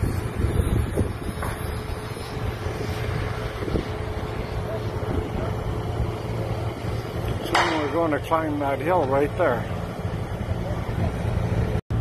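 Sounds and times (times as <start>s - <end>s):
road noise: 0.0s - 12.0s
vehicle engine running: 0.0s - 12.0s.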